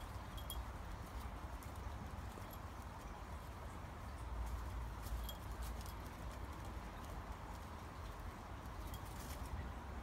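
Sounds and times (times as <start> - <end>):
light clicks and rustles: 0.0 - 9.9.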